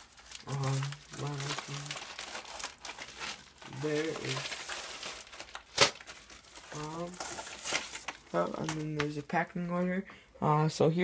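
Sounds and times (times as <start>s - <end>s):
plastic packaging crinkling: 0.0s - 9.4s.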